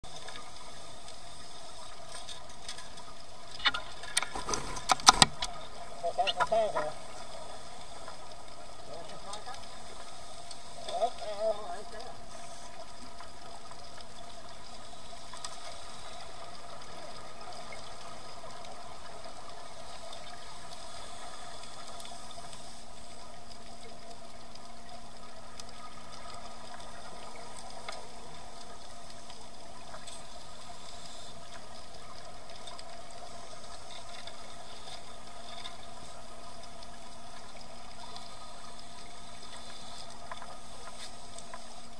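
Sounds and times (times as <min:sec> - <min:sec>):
underwater hiss: 0:00.1 - 0:02.3, 0:06.9 - 0:41.9
faint clicks: 0:00.1 - 0:41.9.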